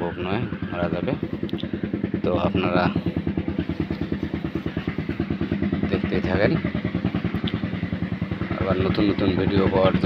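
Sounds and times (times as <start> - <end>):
small engine puttering: 0.0 - 10.0.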